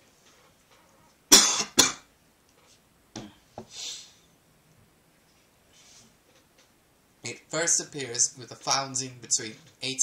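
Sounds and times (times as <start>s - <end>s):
person coughing: 1.3s - 2.1s.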